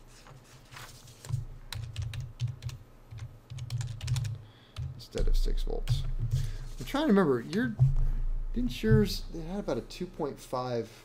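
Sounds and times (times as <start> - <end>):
typing on keyboard: 1.7 - 5.1.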